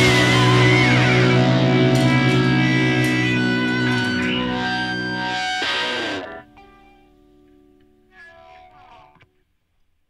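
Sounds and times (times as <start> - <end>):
electric guitar notes ringing: 0.0 - 9.3.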